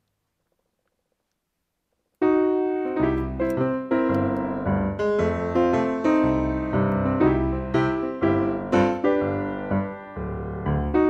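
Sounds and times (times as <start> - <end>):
lively piano music: 2.2 - 11.0.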